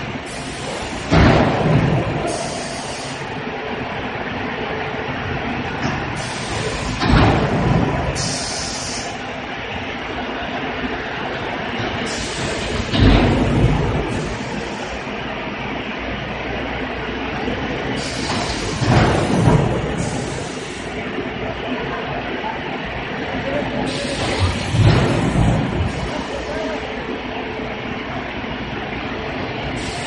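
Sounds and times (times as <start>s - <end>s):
production line machinery din: 0.0s - 30.0s
machine hiss bursts: 0.2s - 3.3s, 6.2s - 9.2s, 12.0s - 15.0s, 18.0s - 21.0s, 23.8s - 26.5s, 29.7s - 30.0s.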